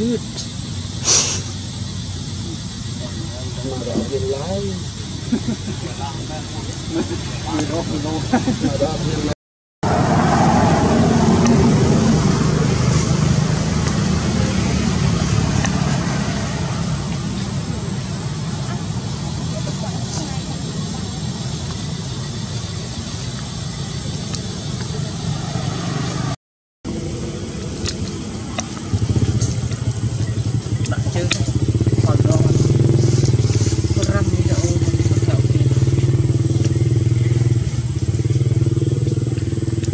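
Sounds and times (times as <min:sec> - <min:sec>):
distant voices: 0:00.0 - 0:39.9
low engine-like rumble: 0:10.4 - 0:39.9.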